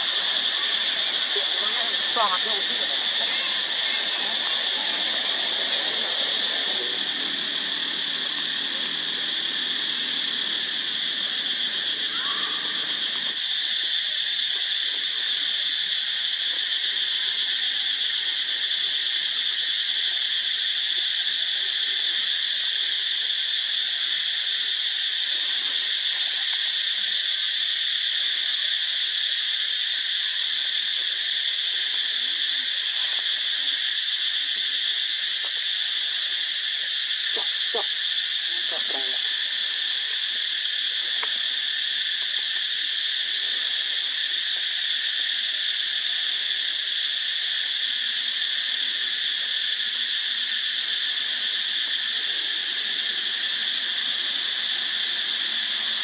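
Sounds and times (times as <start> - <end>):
high-pitched insect chorus: 0.0 - 56.0.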